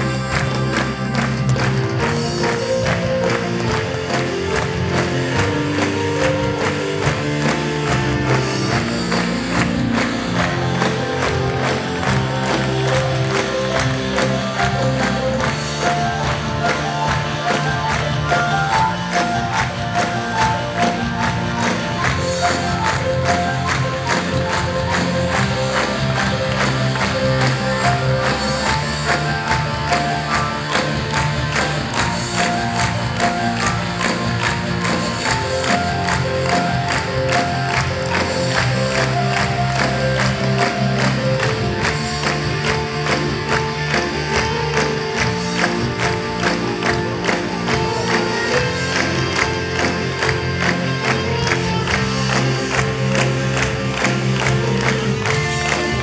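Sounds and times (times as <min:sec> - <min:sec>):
live band with electric guitars: 0:00.0 - 0:56.0
rhythmic hand-clapping: 0:00.0 - 0:56.0.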